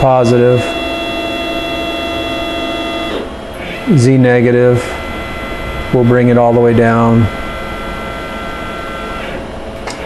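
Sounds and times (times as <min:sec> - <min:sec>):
stepper motor whine: 0:00.0 - 0:10.0.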